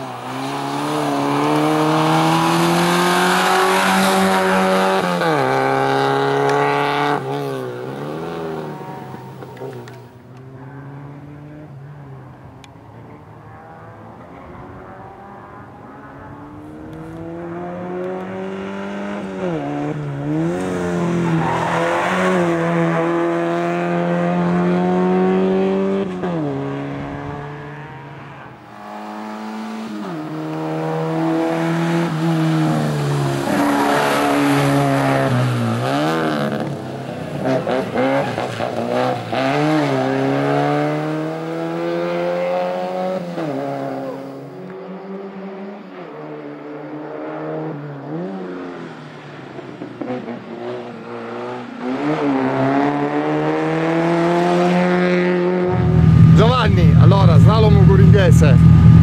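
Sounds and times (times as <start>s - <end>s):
race car engine revving: 0.0s - 11.7s, 13.4s - 45.6s, 50.0s - 59.0s.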